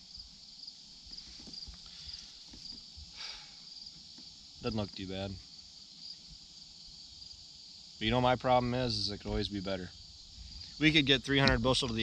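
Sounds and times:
crickets chirping: 0:00.0 - 0:12.0.

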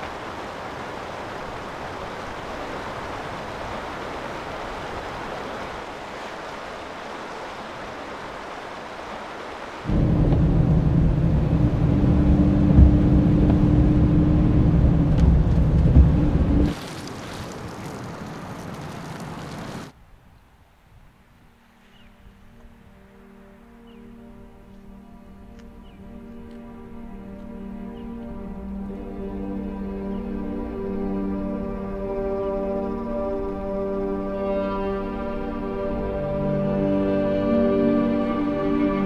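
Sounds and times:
rain on foliage: 0:00.0 - 0:20.0
low rumble with hum: 0:09.9 - 0:16.7.

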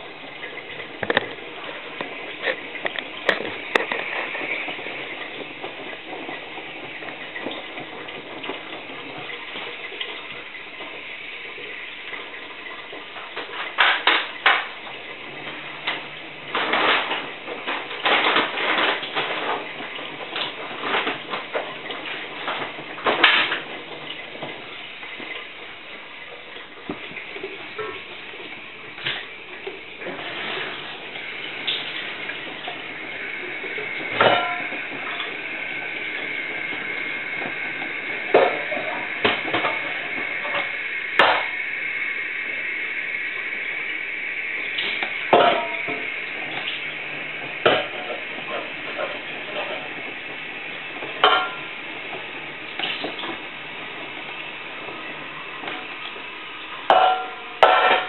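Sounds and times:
washing machine drum tumbling: 0:00.0 - 0:42.4, 0:43.0 - 0:58.0.

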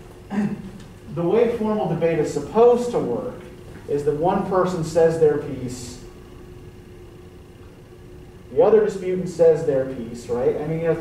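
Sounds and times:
thin steady hum: 0:00.0 - 0:11.0.

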